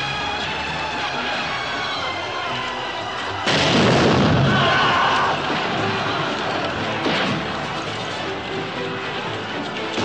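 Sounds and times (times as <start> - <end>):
film score music: 0.0 - 10.0
loud battle blast: 3.5 - 6.2.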